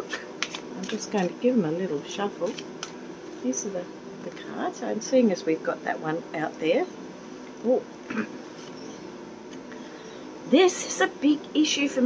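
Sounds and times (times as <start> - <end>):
woman humming: 7.6 - 8.4
woman clearing throat: 8.1 - 8.4.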